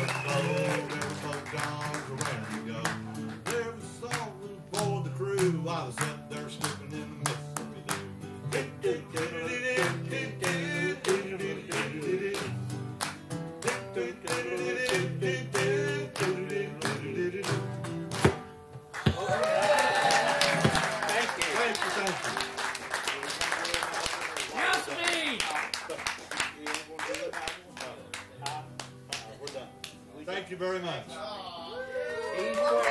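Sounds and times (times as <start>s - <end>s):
strummed acoustic guitar: 0.0s - 19.2s.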